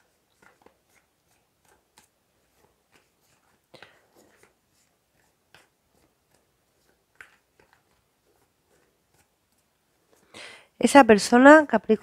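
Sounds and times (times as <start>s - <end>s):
cards being shuffled: 0.3s - 10.3s.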